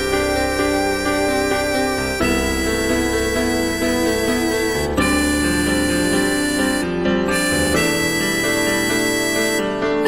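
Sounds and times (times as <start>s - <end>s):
reedy melody over sustained chords: 0.0s - 10.0s.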